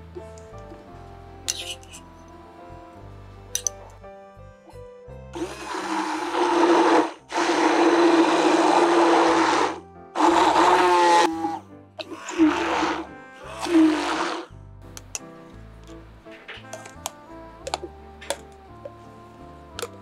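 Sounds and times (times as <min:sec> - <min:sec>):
stick blender motor whirring: 0:05.4 - 0:14.5.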